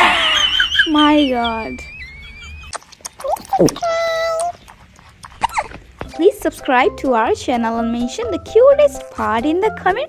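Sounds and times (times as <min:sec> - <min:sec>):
pet animal crying: 0:00.4 - 0:04.7.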